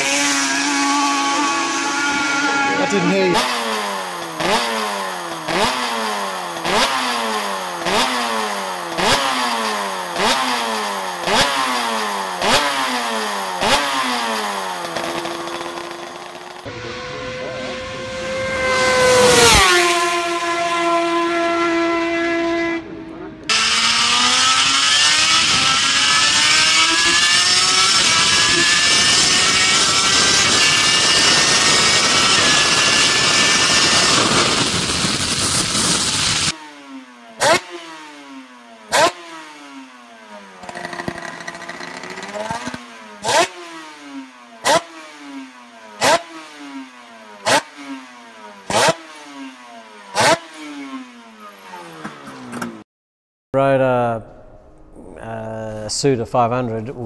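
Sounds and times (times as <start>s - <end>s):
motorcycle engine at speed: 0.0s - 52.8s.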